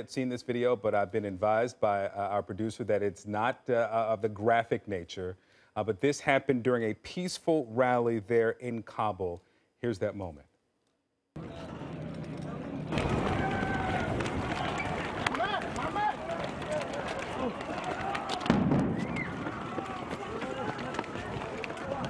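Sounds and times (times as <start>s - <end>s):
crowd shouting: 11.4s - 22.0s
loud explosion blast: 18.4s - 19.7s.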